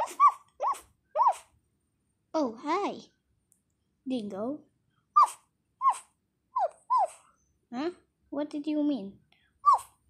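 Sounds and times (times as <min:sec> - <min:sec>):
person imitating puppy yips: 0:00.0 - 0:01.5, 0:05.2 - 0:07.3, 0:09.6 - 0:10.0.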